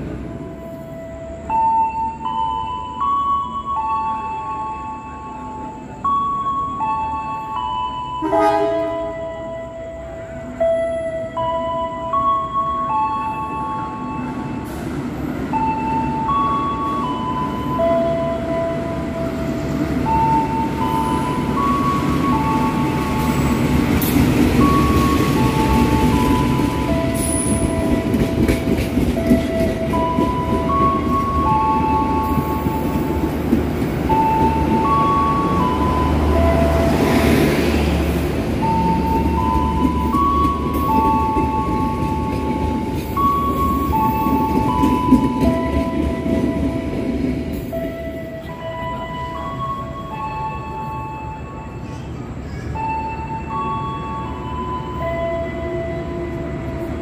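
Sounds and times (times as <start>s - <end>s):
train rumbling into station: 0.0s - 57.0s.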